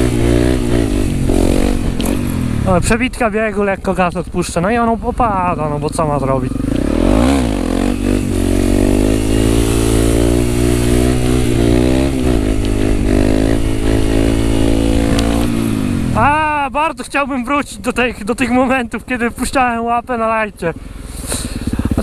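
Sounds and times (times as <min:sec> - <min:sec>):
motorcycle engine at high revs: 0:00.0 - 0:16.6, 0:20.7 - 0:22.0
man talking: 0:02.6 - 0:06.6, 0:16.1 - 0:20.8.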